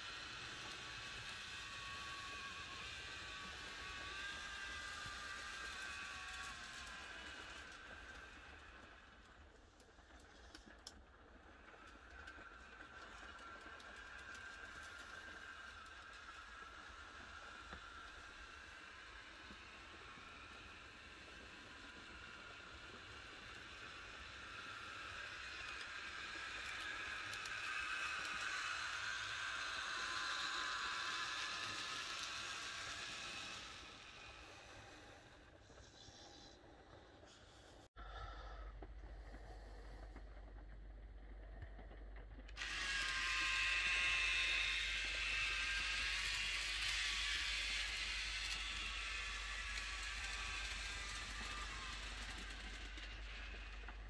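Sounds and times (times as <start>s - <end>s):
model train motor whine: 0.0s - 54.0s.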